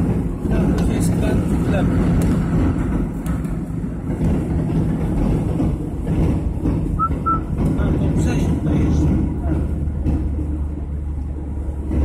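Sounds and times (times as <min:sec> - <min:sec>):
car engine and tyre rumble: 0:00.0 - 0:12.0
short high beeps: 0:07.0 - 0:07.5.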